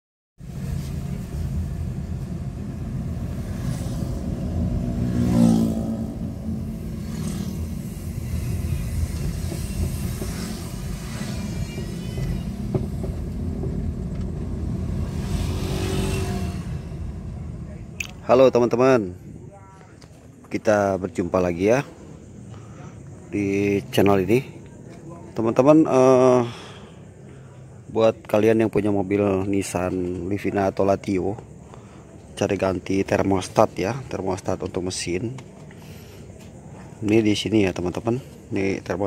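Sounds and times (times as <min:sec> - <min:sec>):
car engine and road noise: 0:00.4 - 0:39.0.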